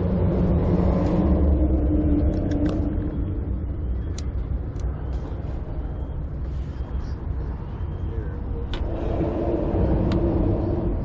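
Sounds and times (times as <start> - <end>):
motor traffic rumble: 0.0 - 11.0.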